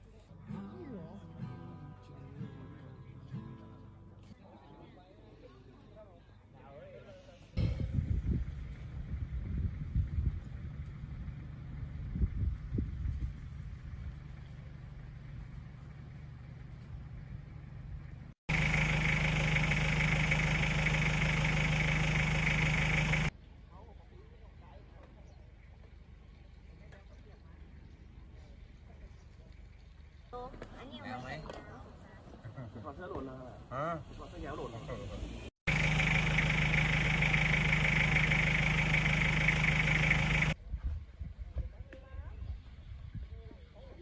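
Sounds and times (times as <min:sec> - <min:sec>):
motor hum with high whine: 0:15.2 - 0:23.3, 0:35.7 - 0:40.6.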